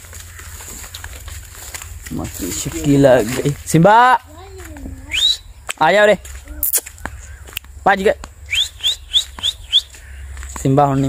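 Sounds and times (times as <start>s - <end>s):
person whistling rising chirps: 5.0s - 5.5s, 8.5s - 9.9s.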